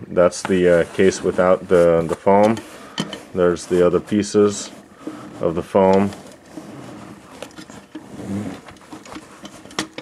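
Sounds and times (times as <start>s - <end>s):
foam and cardboard rustling: 0.2s - 10.0s.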